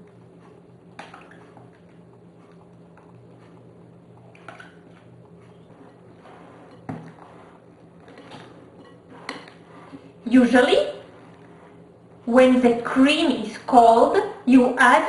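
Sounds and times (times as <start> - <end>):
low steady hum: 0.0 - 15.0
cream plopping and scraping: 1.0 - 12.0.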